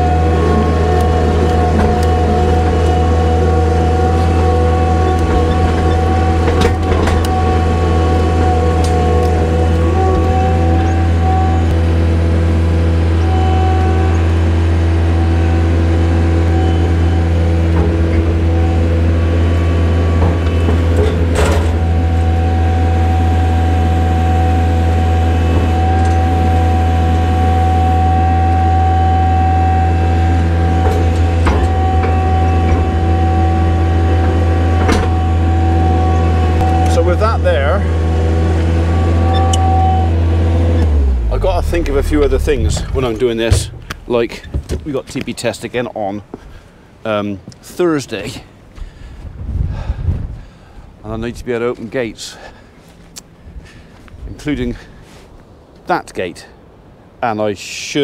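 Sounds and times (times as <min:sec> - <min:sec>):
diesel engine running: 0:00.0 - 0:47.0, 0:48.2 - 0:55.8
steady whine: 0:00.0 - 0:49.4
metal on metal knocks: 0:42.2 - 0:44.9.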